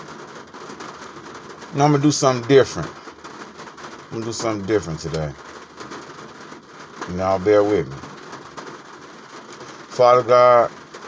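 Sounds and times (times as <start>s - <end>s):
faint background hiss: 0.0s - 11.0s
person speaking: 1.8s - 3.0s, 4.1s - 5.4s, 7.1s - 8.1s, 9.9s - 10.7s.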